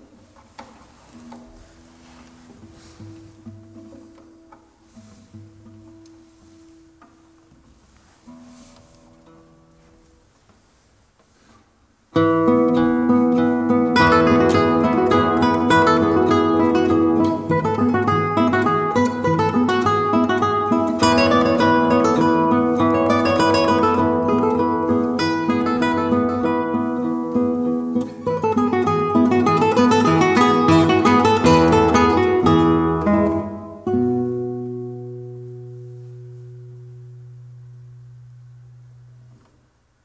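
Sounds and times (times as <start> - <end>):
classical guitar duet: 0.0 - 40.0.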